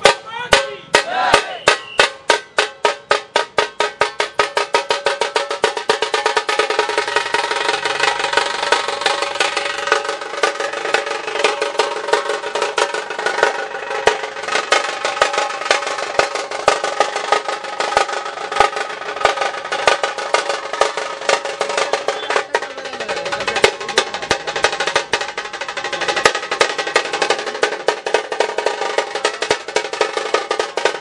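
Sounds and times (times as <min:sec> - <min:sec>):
fast drum and percussion strikes: 0:00.0 - 0:31.0
held melodic tone: 0:00.0 - 0:31.0.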